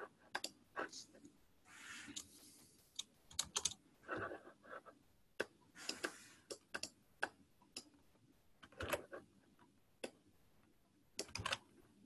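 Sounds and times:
computer keyboard keystrokes: 0:02.9 - 0:03.8, 0:11.2 - 0:11.6.

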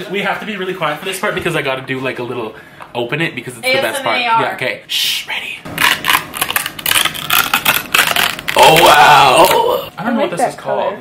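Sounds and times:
paper strip tearing: 0:05.7 - 0:09.7.

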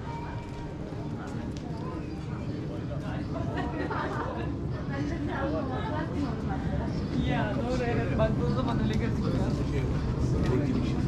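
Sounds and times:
people talking indistinctly: 0:01.0 - 0:11.0.

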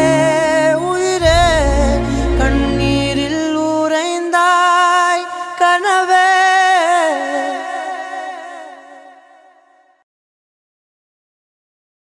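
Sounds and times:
man singing long note with vibrato: 0:00.0 - 0:09.7.

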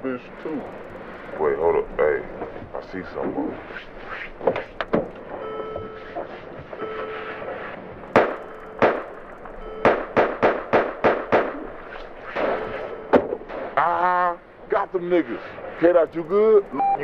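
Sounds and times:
slowed gunshots: 0:07.4 - 0:13.8.

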